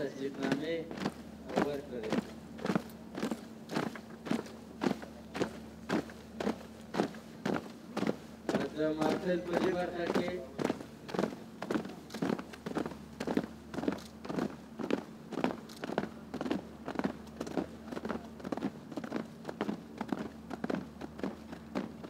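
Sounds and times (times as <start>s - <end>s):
boots marching on dirt: 0.0s - 22.0s
faint steady hum: 0.0s - 22.0s.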